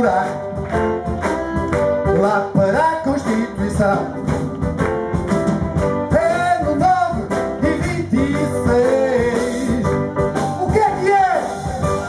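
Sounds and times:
person singing: 0.0s - 5.1s, 6.0s - 12.0s
jazz band playing: 0.0s - 12.0s.

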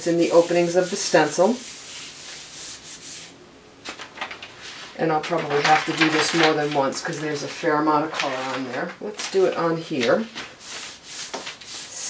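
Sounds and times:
hand rubbing paper: 0.0s - 3.3s, 9.5s - 12.0s
crisp paper sound: 3.9s - 10.8s.

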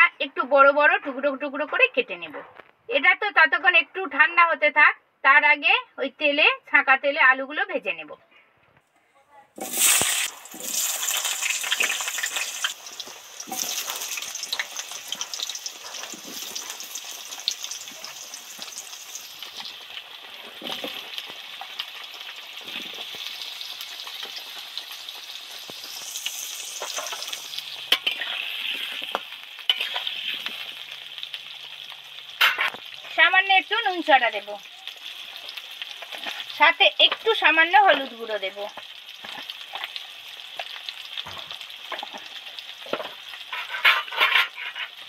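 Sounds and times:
potatoes sizzling in hot oil: 9.6s - 45.0s.

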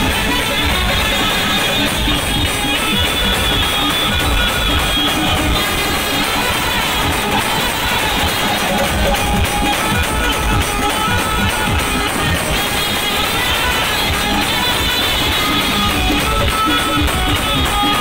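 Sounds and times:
saxophone through microphone: 0.0s - 18.0s
steady drum beat: 0.0s - 18.0s
trumpets: 0.0s - 18.0s.

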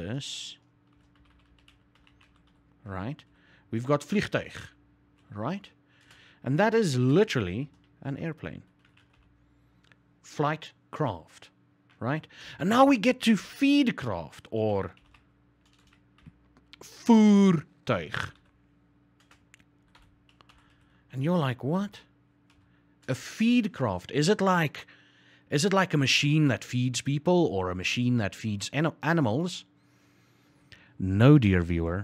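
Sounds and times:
low steady hum: 0.0s - 32.0s
keyboard typing: 0.8s - 2.6s, 6.0s - 6.3s, 7.6s - 10.0s, 14.8s - 16.8s, 19.2s - 20.9s, 22.5s - 23.2s.

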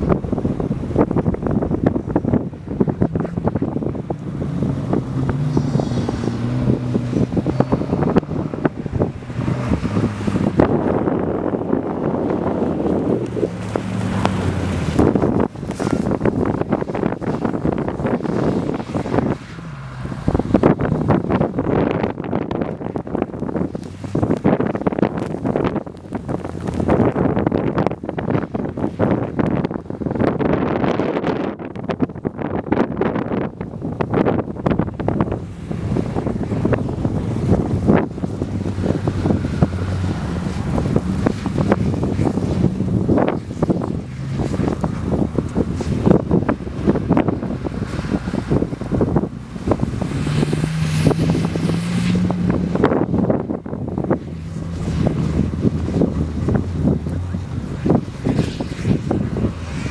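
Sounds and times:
car engine revving: 0.0s - 59.9s
wind buffeting microphone: 0.0s - 59.9s.

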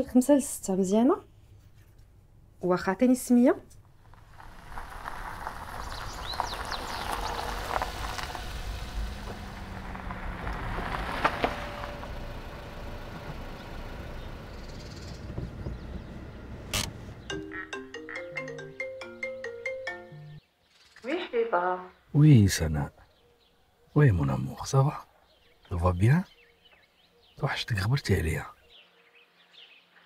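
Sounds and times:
mobile phone ringtone: 17.3s - 20.4s.

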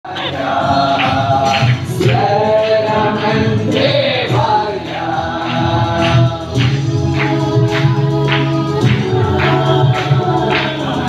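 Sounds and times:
group of people singing: 0.0s - 11.0s.

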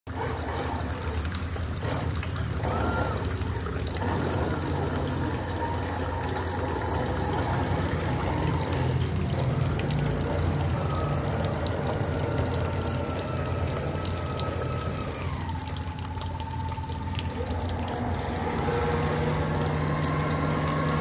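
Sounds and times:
water churning at hull: 0.0s - 21.0s
model boat motor humming: 0.1s - 21.0s.

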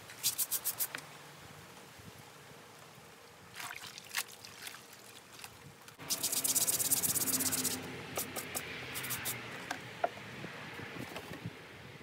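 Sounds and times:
soap scrubbing on wet garment: 3.6s - 8.4s.

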